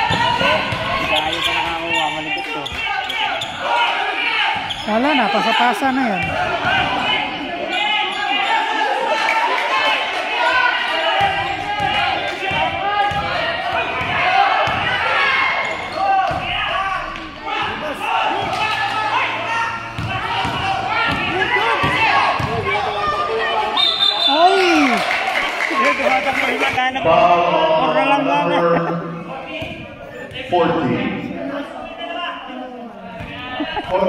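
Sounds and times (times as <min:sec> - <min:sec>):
people talking: 0:04.9 - 0:06.3
high whistle blast: 0:23.8 - 0:24.6.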